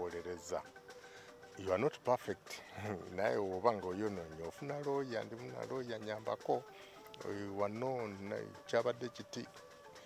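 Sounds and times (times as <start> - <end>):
man speaking: 0.0 - 0.8, 1.5 - 9.6
man laughing heartily: 2.7 - 3.1.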